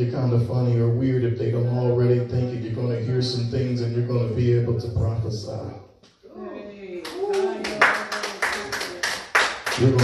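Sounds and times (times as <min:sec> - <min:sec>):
hands clapping in rhythm: 0:07.0 - 0:10.0.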